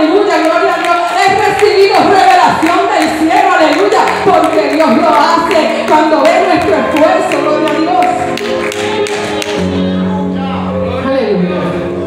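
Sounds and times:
lively church music: 0:00.0 - 0:12.0.

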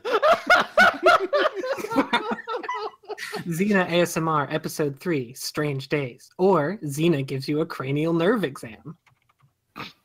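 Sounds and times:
people laughing: 0:00.0 - 0:03.5.

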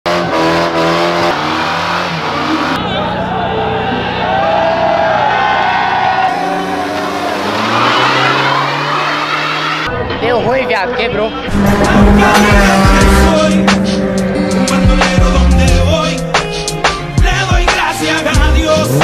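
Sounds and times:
car engines revving: 0:00.1 - 0:19.0
crowd shouting: 0:02.3 - 0:10.0
tyres squealing: 0:06.2 - 0:09.9.

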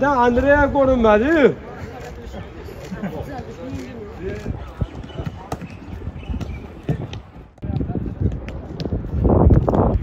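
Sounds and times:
men talking: 0:00.0 - 0:05.5.

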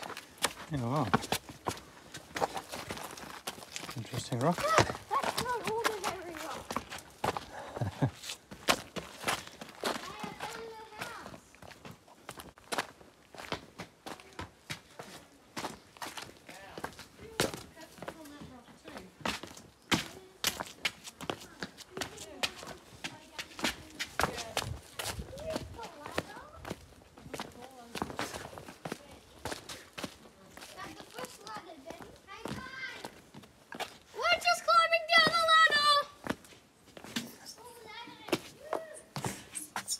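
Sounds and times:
footsteps crunching on stones: 0:00.0 - 0:37.2
voices: 0:04.2 - 0:06.8, 0:34.1 - 0:36.2
child's voice: 0:04.6 - 0:06.7, 0:09.9 - 0:11.5, 0:25.2 - 0:26.8, 0:30.6 - 0:33.1, 0:34.1 - 0:36.2, 0:37.5 - 0:39.2.

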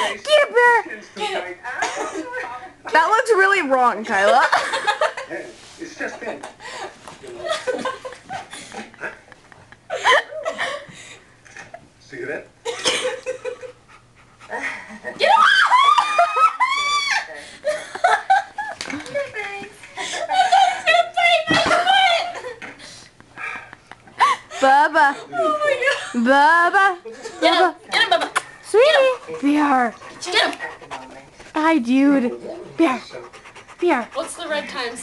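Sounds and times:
large dog panting: 0:13.7 - 0:14.6, 0:28.8 - 0:35.0.

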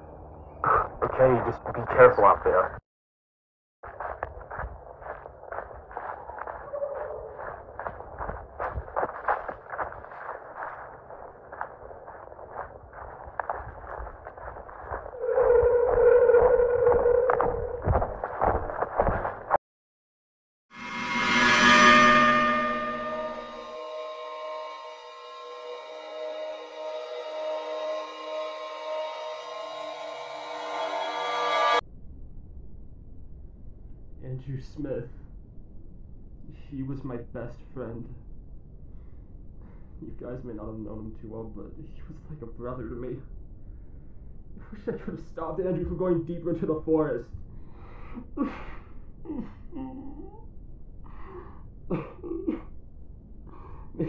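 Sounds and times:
footsteps crunching through dry leaves: 0:03.8 - 0:15.2, 0:17.4 - 0:19.6
drone of ringing tones: 0:11.5 - 0:18.3, 0:20.8 - 0:31.8
gong-like swell: 0:20.8 - 0:31.8.

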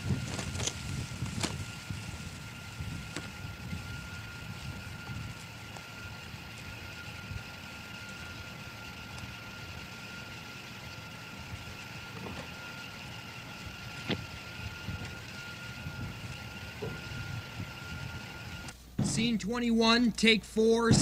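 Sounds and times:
car engine running at low speed: 0:00.0 - 0:19.5
thin high hum: 0:00.0 - 0:21.0.

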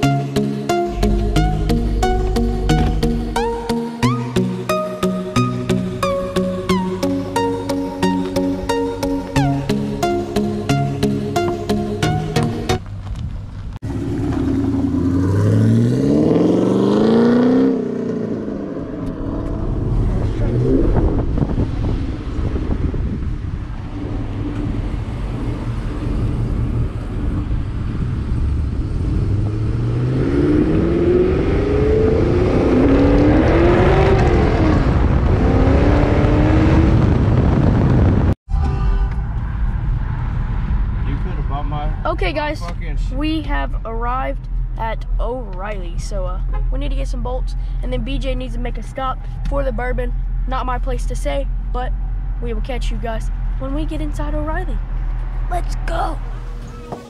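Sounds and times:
road noise: 0:00.0 - 0:57.0
car engine accelerating hard: 0:13.8 - 0:44.9, 0:51.2 - 0:57.0.

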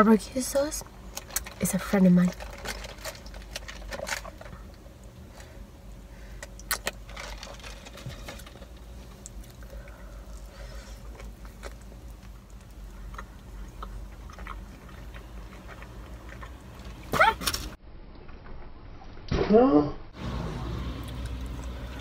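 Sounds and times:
low steady hum: 0:00.0 - 0:22.0
chewing food: 0:06.4 - 0:17.1.

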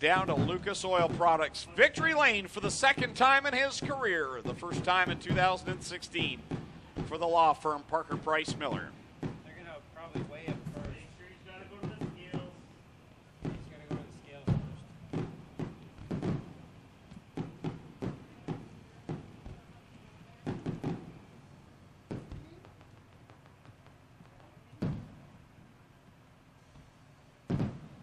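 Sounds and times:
fireworks bangs and thuds: 0:00.0 - 0:26.0, 0:26.7 - 0:28.0.

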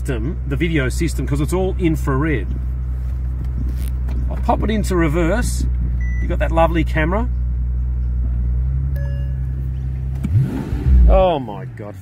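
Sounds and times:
car engine idling and revving: 0:00.0 - 0:12.0
short electronic chime: 0:09.0 - 0:09.8.

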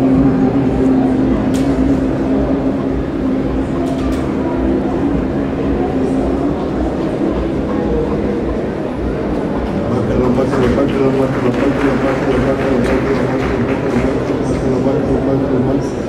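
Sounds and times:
man humming low drone: 0:00.0 - 0:09.0.

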